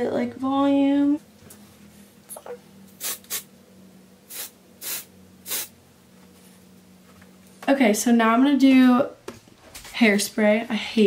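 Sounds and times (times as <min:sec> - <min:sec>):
aerosol can spraying: 0:03.0 - 0:03.5, 0:04.3 - 0:05.7.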